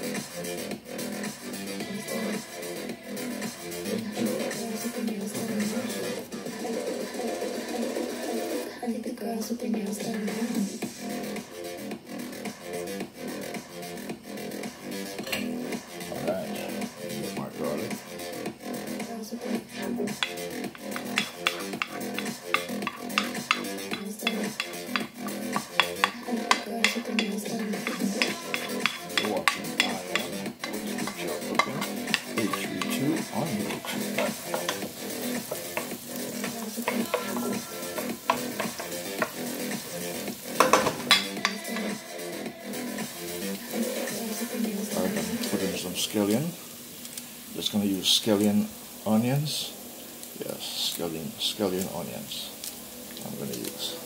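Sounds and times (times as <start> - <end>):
background music: 0.0 - 46.8
garlic sizzling in hot oil: 10.2 - 54.0
wooden spoon scraping a pot: 20.2 - 41.9.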